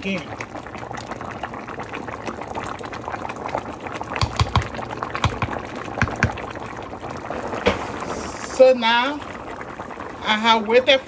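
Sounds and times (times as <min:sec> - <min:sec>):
thick soup boiling and popping: 0:00.0 - 0:11.0.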